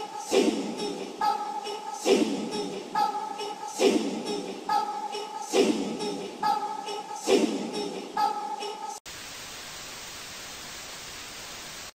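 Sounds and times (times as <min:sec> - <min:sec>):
steady static hiss: 0:09.1 - 0:12.0.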